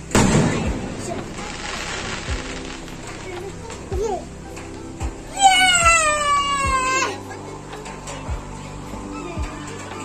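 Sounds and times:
low thumps: 0.0 - 6.8.

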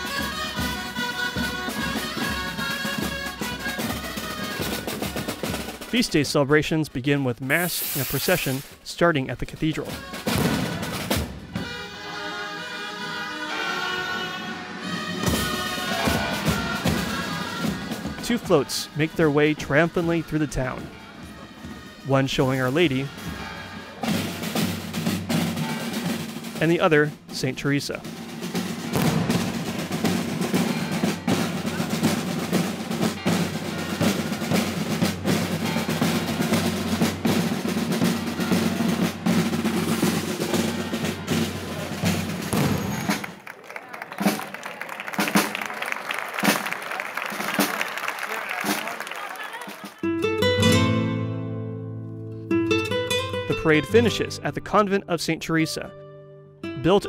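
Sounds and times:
music with held notes: 0.0 - 5.9, 9.9 - 26.8, 28.0 - 42.8, 50.0 - 57.0
snare drums rolling: 0.0 - 6.2, 9.8 - 11.8, 15.0 - 43.5, 44.1 - 50.1
bass drum: 28.6 - 43.2.

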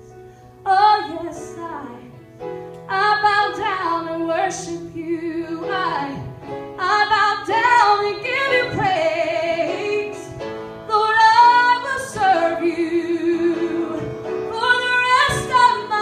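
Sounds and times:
piano accompaniment: 0.0 - 16.0
woman singing: 0.7 - 2.2, 2.9 - 16.0.

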